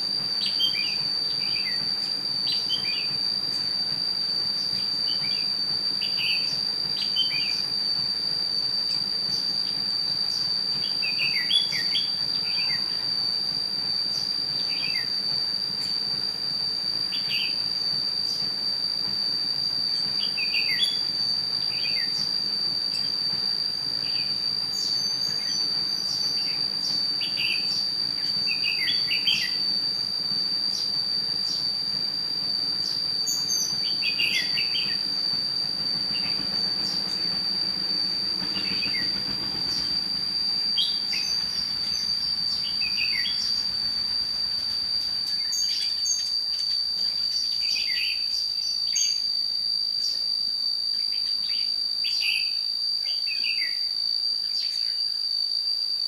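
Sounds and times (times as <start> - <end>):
high-pitched insect drone: 0.0 - 56.0.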